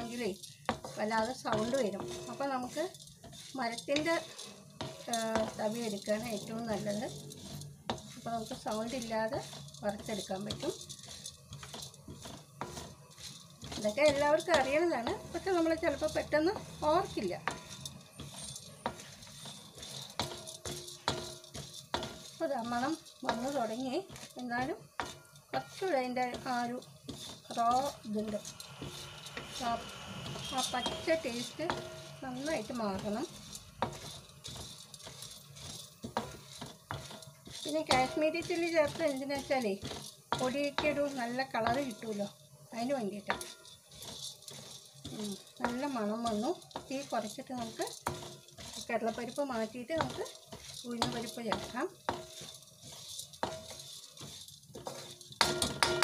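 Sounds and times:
grains sizzling on a griddle: 0.0 - 56.0
lentils scraping and rattling: 0.0 - 56.0
stirring tool knocking on pan: 0.0 - 56.0.

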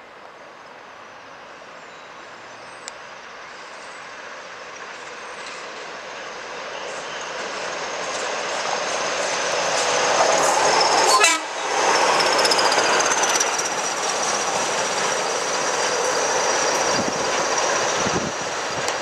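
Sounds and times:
diesel locomotives passing: 0.1 - 19.0
train wheel noise: 3.4 - 19.0.

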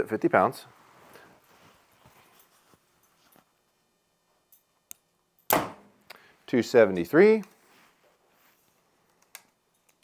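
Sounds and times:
bow shot: 5.5 - 6.0.

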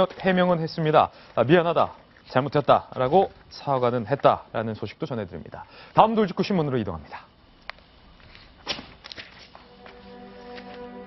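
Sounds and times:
quiet footsteps: 7.6 - 11.0
soft background music: 9.6 - 11.0.

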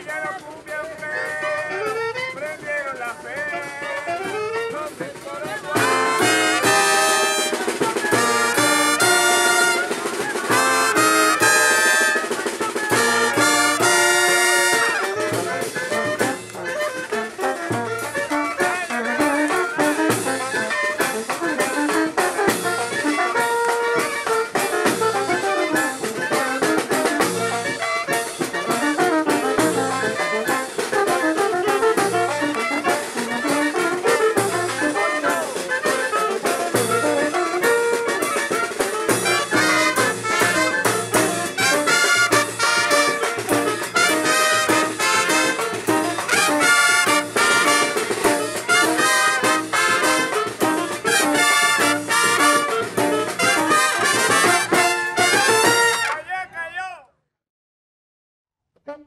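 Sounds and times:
brass band playing: 0.0 - 56.6.

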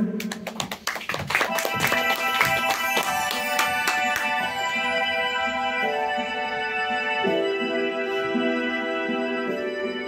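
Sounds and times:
instrumental held chords: 1.5 - 10.0.

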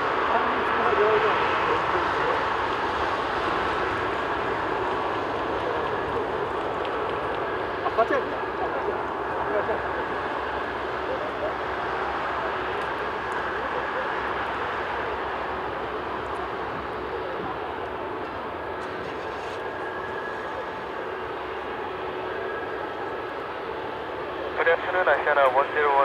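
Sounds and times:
jet engines hum with whine: 0.0 - 26.0.

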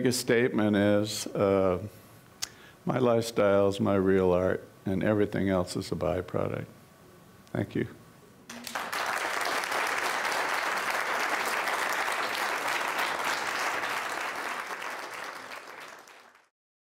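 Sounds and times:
audience applauding: 8.5 - 16.5.

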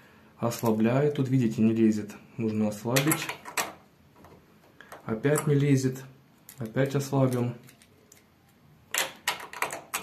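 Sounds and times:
small sharp metal clicks: 6.4 - 10.0.

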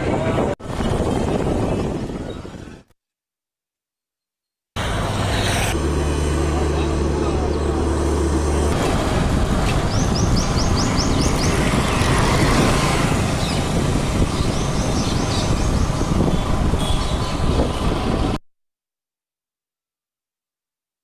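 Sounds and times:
vehicle engine running: 4.8 - 13.6
roar of passing traffic: 4.8 - 18.4.

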